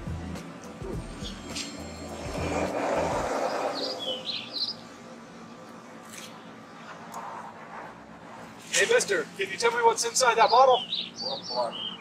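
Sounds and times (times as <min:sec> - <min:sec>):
background music: 0:00.0 - 0:04.2
quiet outdoor ambience: 0:00.0 - 0:12.0
rush of outdoor noise: 0:00.0 - 0:12.0.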